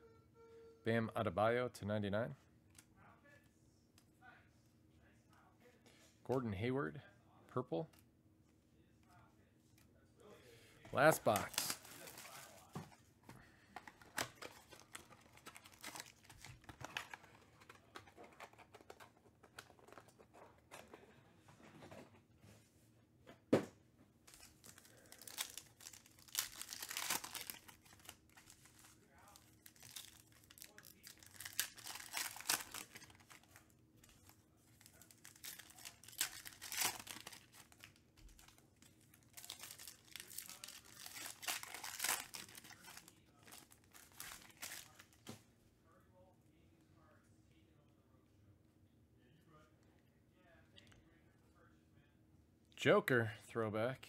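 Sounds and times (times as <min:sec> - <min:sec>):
foil wrappers tearing and crinkling: 0:11.0 - 0:12.7, 0:14.0 - 0:17.7, 0:24.3 - 0:33.6, 0:34.8 - 0:45.1.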